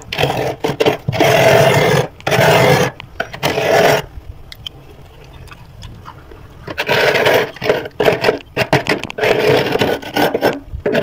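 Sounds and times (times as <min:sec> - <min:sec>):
metal spoon scraping frost: 0:06.7 - 0:11.0.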